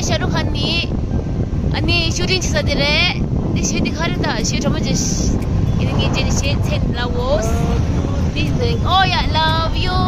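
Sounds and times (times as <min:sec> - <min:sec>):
people talking: 0:00.0 - 0:00.9, 0:01.8 - 0:10.0
low rumble: 0:00.0 - 0:10.0.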